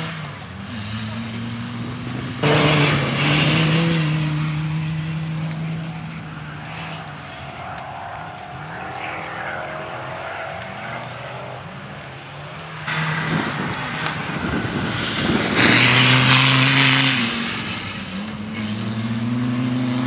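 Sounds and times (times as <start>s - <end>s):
car engine running hard: 0.0s - 20.0s.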